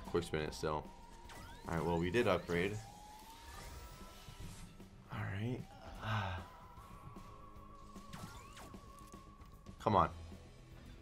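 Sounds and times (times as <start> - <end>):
electronic tones gliding upward: 0.2 - 5.6, 6.4 - 9.6.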